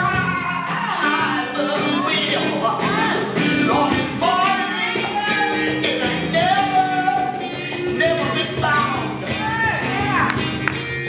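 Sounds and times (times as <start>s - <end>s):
hand drum: 1.8s - 11.0s.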